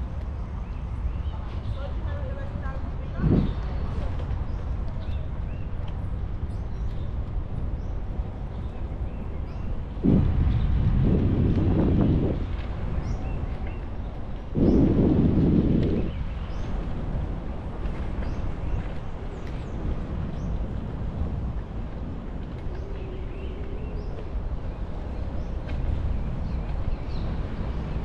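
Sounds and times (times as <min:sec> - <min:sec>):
wind rumbling on microphone: 0:00.0 - 0:28.0.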